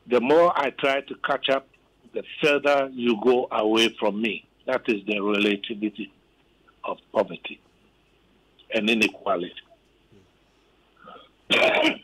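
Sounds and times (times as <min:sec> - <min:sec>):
person coughing: 0:11.5 - 0:12.0.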